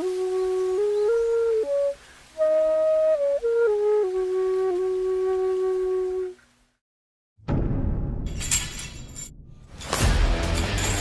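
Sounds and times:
music: 0.0s - 6.4s, 7.4s - 11.0s
deep rumbling boom: 7.4s - 9.8s
glassy shatter-like crash: 8.2s - 11.0s.

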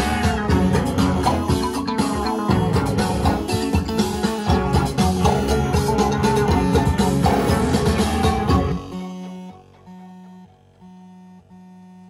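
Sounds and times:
low synthesizer note pulses: 0.0s - 12.0s.

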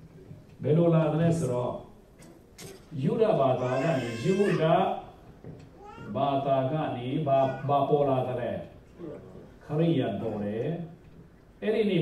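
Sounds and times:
man speaking: 3.0s - 5.1s, 6.0s - 11.0s.

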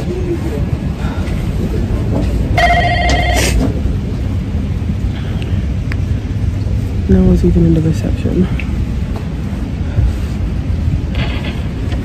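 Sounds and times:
steady low rumble: 0.0s - 12.0s
warbling electronic ring: 2.6s - 3.6s.

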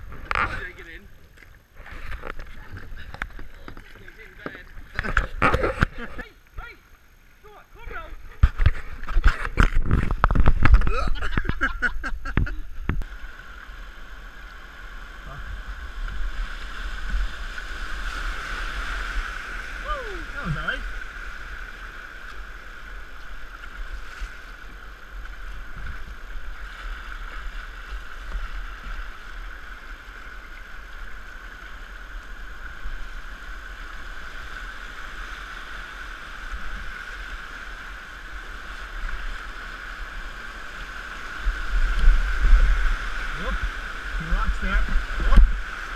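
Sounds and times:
whitewater rushing: 12.4s - 45.9s.

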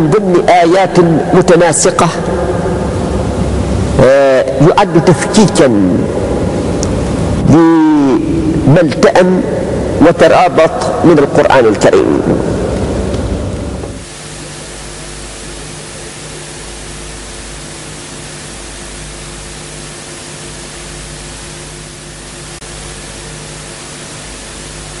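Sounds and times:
low electrical hum: 0.0s - 25.0s
recording hiss: 0.0s - 25.0s.

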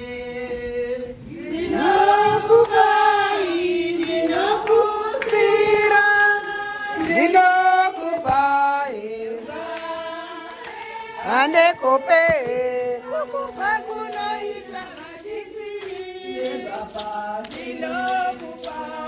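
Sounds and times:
women singing a hymn: 0.0s - 19.0s.

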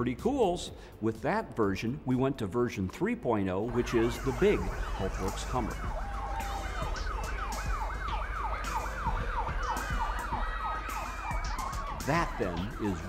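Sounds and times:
siren-like whooping wails: 3.7s - 13.0s.

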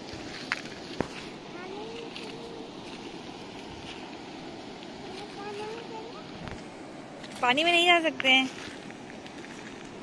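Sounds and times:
river rushing over pebbles: 0.0s - 10.0s.

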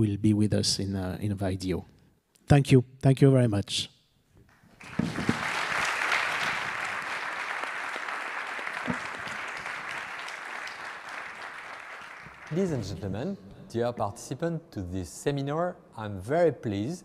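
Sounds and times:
audience applauding: 4.5s - 13.0s.

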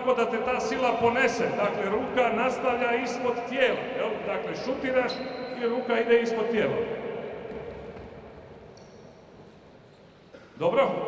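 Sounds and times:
echoing man's voice: 0.0s - 7.5s, 10.4s - 11.0s.

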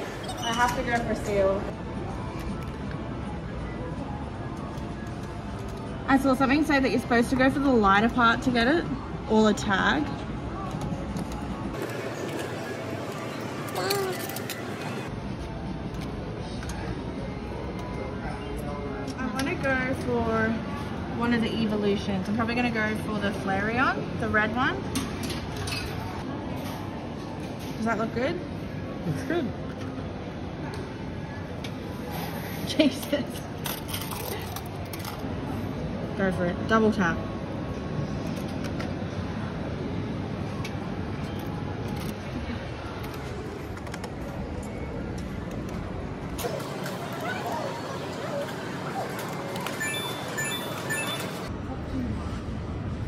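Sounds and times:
arcade background din: 0.0s - 53.0s
arcade machine noise: 11.5s - 15.2s, 45.9s - 51.5s
voices: 46.4s - 51.5s
short electronic beeps: 49.8s - 51.5s.

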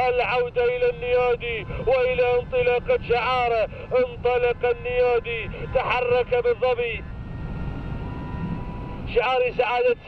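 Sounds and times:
faint whining tones: 0.0s - 10.0s.

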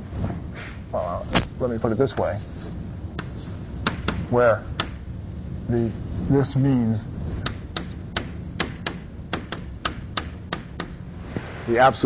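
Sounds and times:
chalk tapping on blackboard: 3.2s - 4.2s, 4.8s - 5.0s, 7.4s - 11.0s.

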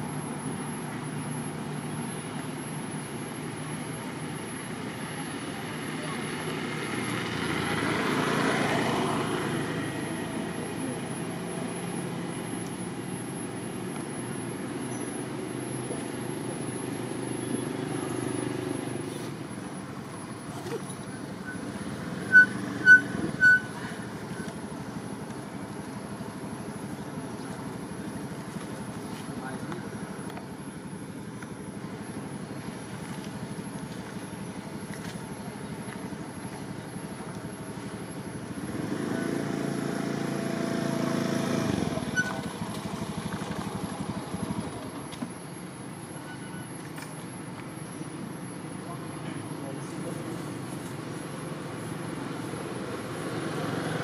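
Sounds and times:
distant traffic: 0.0s - 54.0s
faint distant voices: 0.0s - 54.0s
short high beeps: 20.9s - 24.5s.

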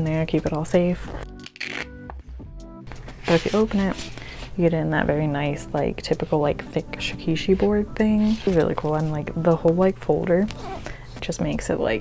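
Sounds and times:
soft sustained background music: 0.0s - 12.0s
plastic folder rustling: 3.0s - 4.6s, 8.2s - 9.2s.

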